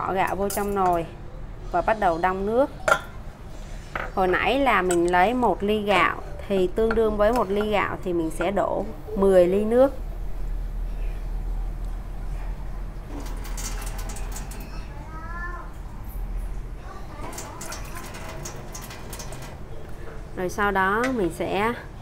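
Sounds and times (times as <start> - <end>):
tap water running into glass: 17.2 - 19.6
water poured into pot: 17.2 - 19.7.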